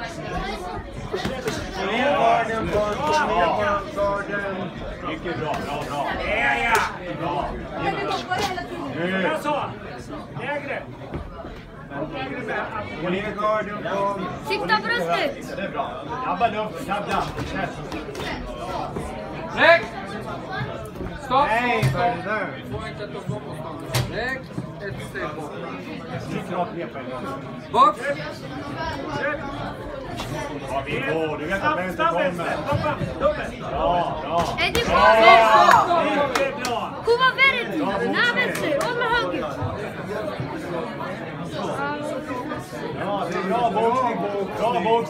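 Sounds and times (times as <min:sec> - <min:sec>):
voices chattering: 0:00.0 - 0:45.0.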